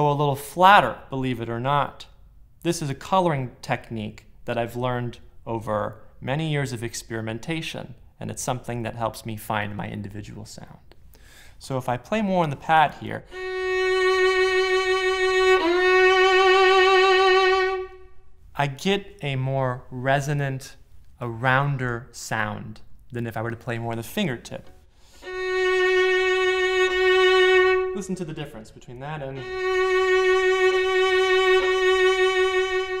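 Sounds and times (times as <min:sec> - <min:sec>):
solo violin with vibrato: 0:13.2 - 0:18.2, 0:25.1 - 0:33.0.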